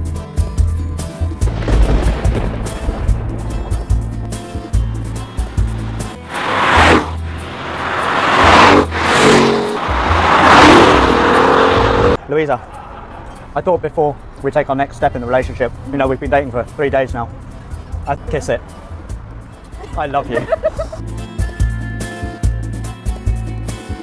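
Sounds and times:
music with heavy bass beat: 0:00.0 - 0:07.6, 0:19.0 - 0:24.0
car driving past: 0:06.2 - 0:12.2.

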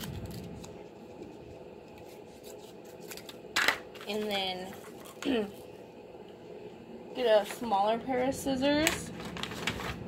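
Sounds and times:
scissors cutting paper: 0:00.0 - 0:01.2, 0:01.9 - 0:03.4
paper handling sounds: 0:00.0 - 0:05.7, 0:08.8 - 0:10.0.

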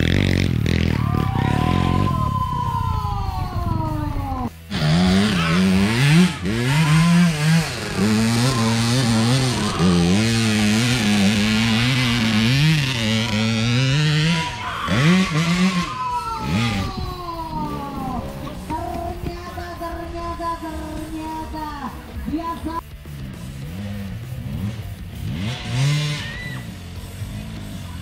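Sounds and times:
motorcycle engine revving: 0:00.0 - 0:02.6, 0:03.8 - 0:28.0.

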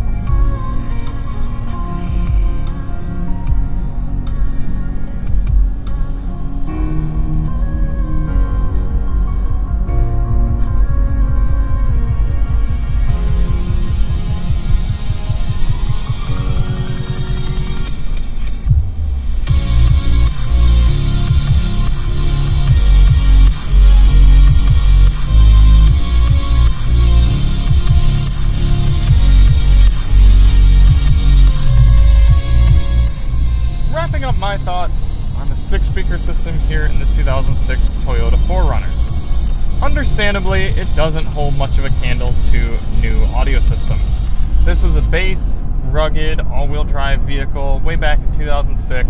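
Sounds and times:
electronic music through car stereo: 0:00.0 - 0:49.0
rising synth sweep: 0:09.9 - 0:46.0.

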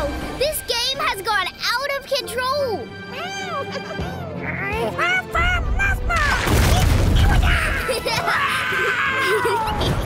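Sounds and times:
soft music: 0:00.0 - 0:10.0.

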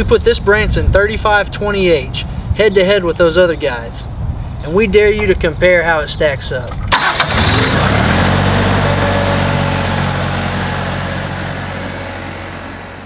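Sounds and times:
diesel engine starting and idling: 0:06.7 - 0:13.0.

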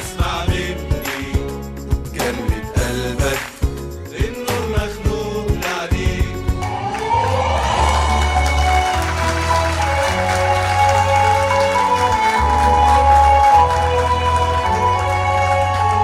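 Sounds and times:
instrumental ensemble playing: 0:06.4 - 0:16.0.

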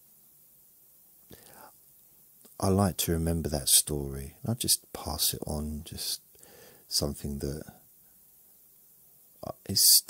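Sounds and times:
soft intake of breath: 0:01.3 - 0:01.8, 0:06.3 - 0:06.9.

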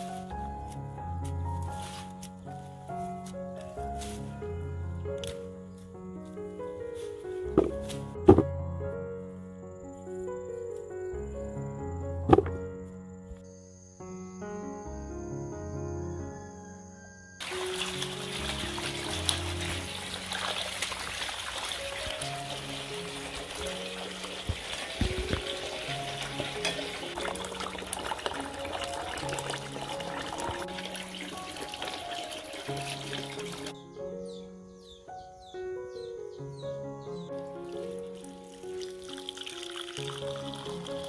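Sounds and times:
light background music: 0:00.0 - 0:41.0
water running and splashing: 0:17.4 - 0:33.7, 0:37.4 - 0:41.0.

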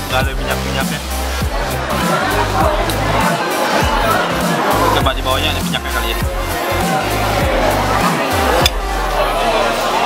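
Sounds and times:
music with bass and drums: 0:00.0 - 0:10.0
voices: 0:00.0 - 0:10.0.

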